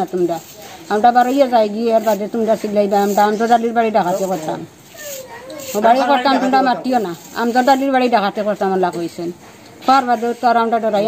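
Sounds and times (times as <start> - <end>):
woman speaking: 0.0 - 4.8, 5.5 - 11.0.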